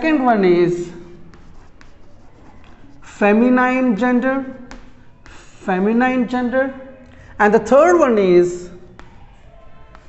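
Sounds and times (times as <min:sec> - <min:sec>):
chalk scratching on chalkboard: 0:00.7 - 0:03.6.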